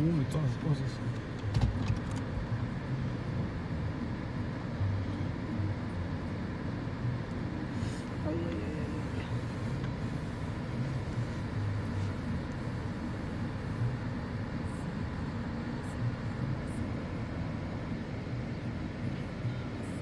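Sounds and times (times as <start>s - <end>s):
car idling from inside cabin: 0.0s - 20.0s.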